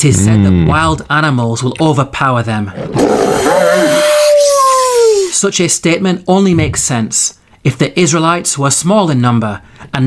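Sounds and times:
wolf howling: 2.8 - 5.3.

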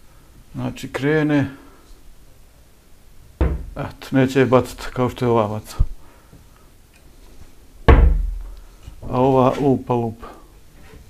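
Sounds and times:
cabinet door banging shut: 3.4 - 3.8, 7.9 - 8.4.

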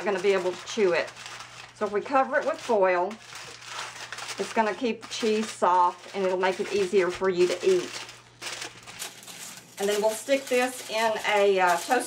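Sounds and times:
aluminium foil crinkling: 0.0 - 12.0.

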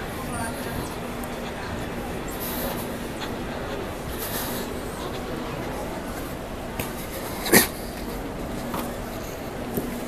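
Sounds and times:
constant low hum: 0.0 - 10.0
indistinct background noise: 0.0 - 10.0.

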